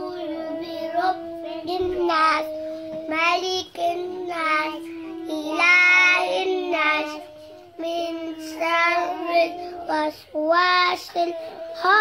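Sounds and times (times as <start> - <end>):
child chanting recitation: 0.0 - 12.0.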